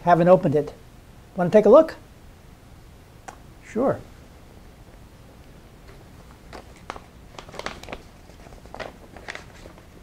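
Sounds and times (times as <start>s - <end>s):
stiff paper rustling: 5.9s - 10.0s.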